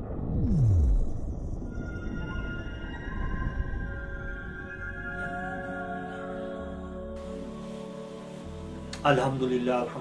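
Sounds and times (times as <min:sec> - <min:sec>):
low rumble: 0:00.0 - 0:05.0.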